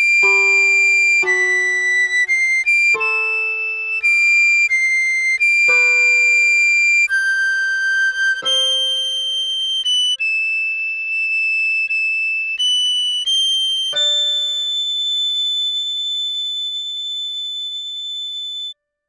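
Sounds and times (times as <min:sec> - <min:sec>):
recorder playing high notes: 0:00.0 - 0:16.0
keyboard chord: 0:00.2 - 0:04.6.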